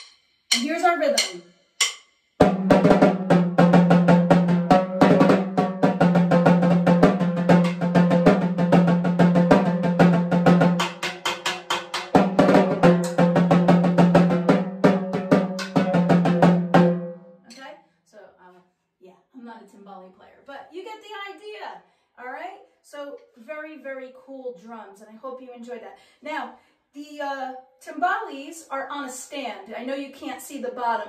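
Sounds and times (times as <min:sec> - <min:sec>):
timbales played with drumsticks: 0:00.0 - 0:17.6.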